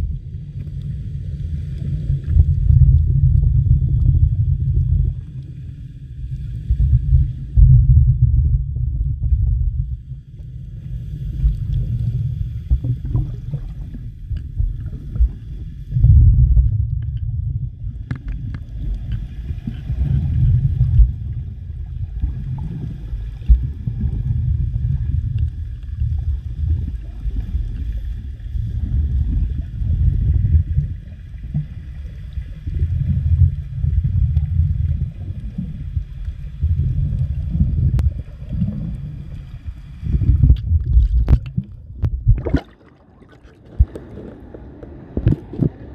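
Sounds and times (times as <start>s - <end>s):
muffled underwater water rumble: 0.0s - 45.9s.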